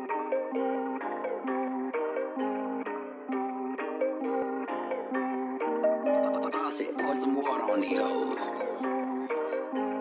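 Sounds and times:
guitar picking a repeating melody: 0:00.0 - 0:10.0.

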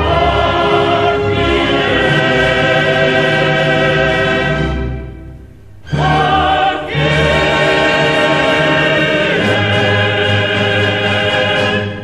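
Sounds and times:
male chorus singing: 0:00.0 - 0:05.0, 0:05.9 - 0:12.0
orchestra sustained chords: 0:00.0 - 0:12.0.

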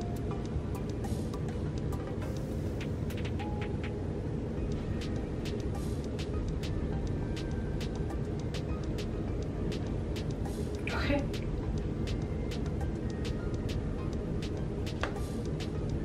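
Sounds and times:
steady low rumble: 0:00.0 - 0:16.0.

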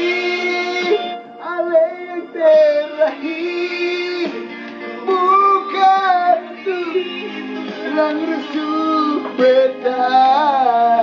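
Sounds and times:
man singing with vibrato: 0:00.0 - 0:11.0.

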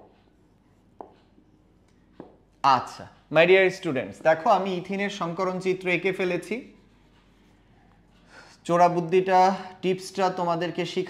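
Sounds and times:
man talking: 0:02.6 - 0:06.8, 0:08.6 - 0:11.0.

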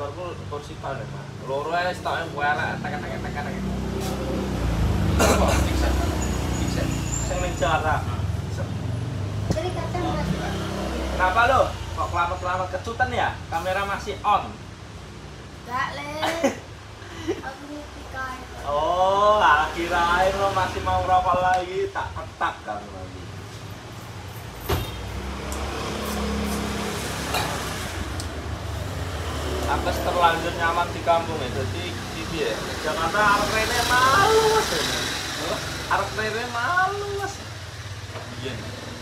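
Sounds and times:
man speaking: 0:29.7 - 0:37.5.

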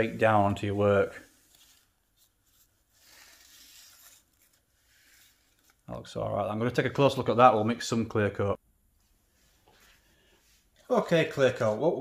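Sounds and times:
cloth rubbing over paint: 0:00.0 - 0:05.9.

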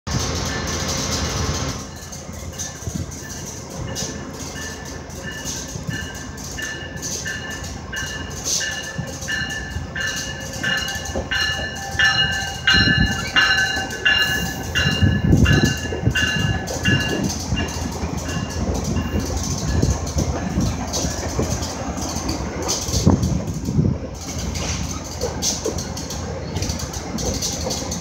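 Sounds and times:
train wheels thumping: 0:00.1 - 0:28.0
train warning bell ringing: 0:01.8 - 0:23.1.

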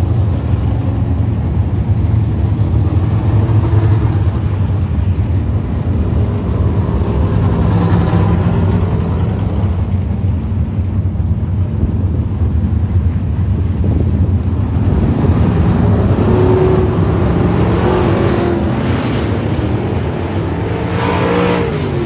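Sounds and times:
race car engines rumbling: 0:00.0 - 0:22.0.

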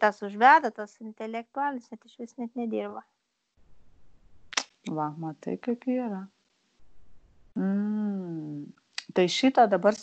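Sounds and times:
woman speaking: 0:00.0 - 0:03.0, 0:04.9 - 0:06.3, 0:07.6 - 0:10.0.

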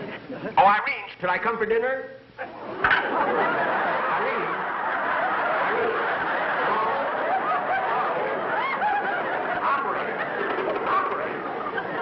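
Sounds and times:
studio audience laughing: 0:02.6 - 0:12.0.

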